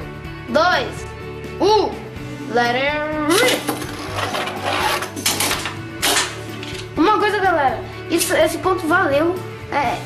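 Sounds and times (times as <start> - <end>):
spinning tops whirring on plastic: 3.5 - 6.9.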